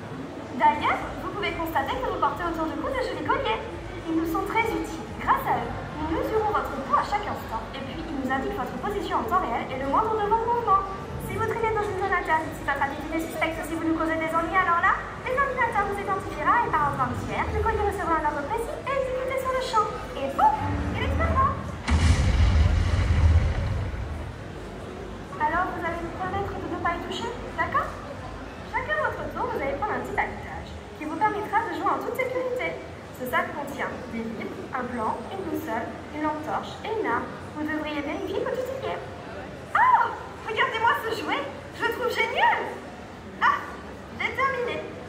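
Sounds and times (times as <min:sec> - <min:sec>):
explosion rumble: 0:20.8 - 0:24.9.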